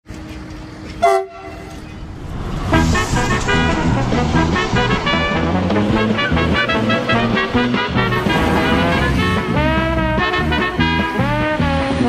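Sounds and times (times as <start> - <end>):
railway horn blast: 0.9 - 2.0, 2.6 - 12.0
music with steady beat: 4.5 - 12.0.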